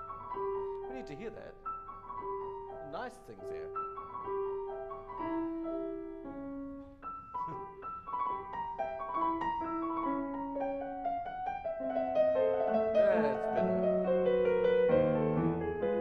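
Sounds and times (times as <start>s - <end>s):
grand piano classical passage: 0.0s - 16.0s.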